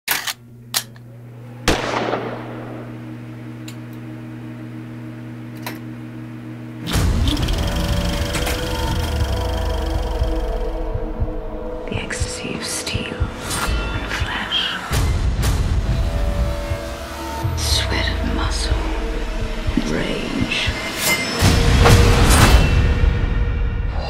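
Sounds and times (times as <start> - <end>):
low drone: 0.5 - 24.0
deep bass-heavy music: 1.6 - 24.0
gunshot sound effects: 1.7 - 3.0.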